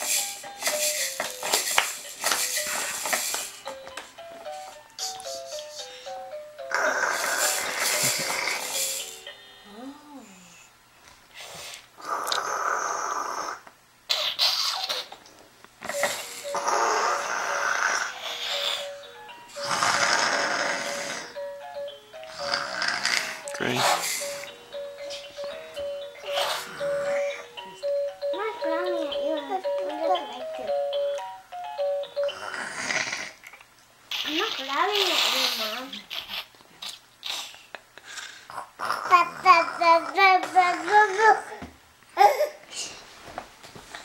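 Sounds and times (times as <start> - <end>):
toy electronic melody: 0.0 - 9.7, 15.9 - 32.5
breathy laughter: 6.8 - 8.7.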